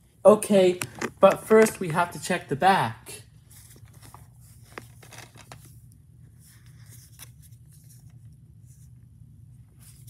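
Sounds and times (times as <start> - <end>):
steady low hum: 0.0 - 10.0
plastic case clicks and rustles: 0.8 - 1.7, 4.0 - 5.7.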